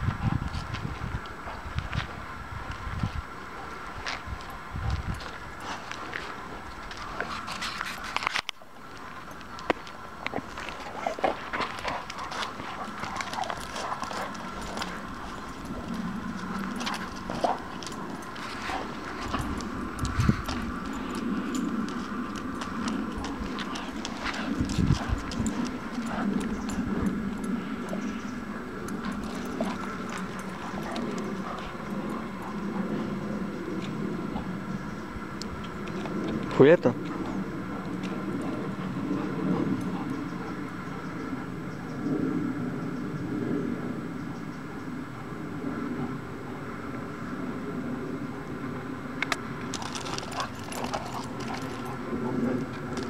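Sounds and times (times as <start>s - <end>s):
faint background hum: 0.0s - 53.0s
dog claws clicking on asphalt: 2.7s - 34.6s, 35.4s - 40.6s, 49.2s - 53.0s.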